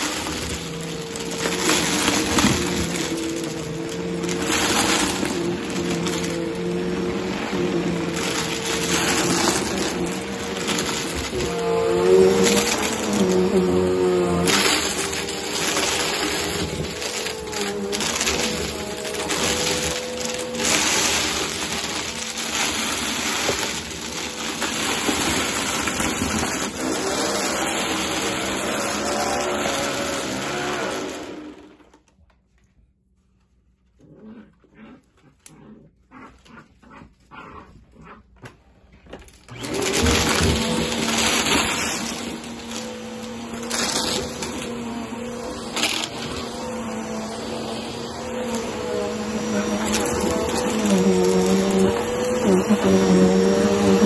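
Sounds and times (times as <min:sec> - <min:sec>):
vacuum cleaner running: 0:00.0 - 0:32.0, 0:39.4 - 0:54.0.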